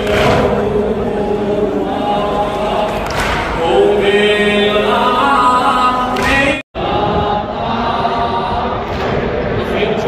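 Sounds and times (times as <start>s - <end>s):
crowd chanting: 0.0s - 10.0s.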